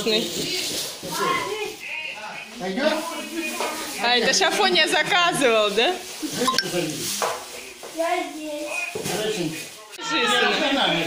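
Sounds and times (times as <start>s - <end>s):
plastic bag rustling: 0.0s - 1.9s, 2.6s - 10.0s.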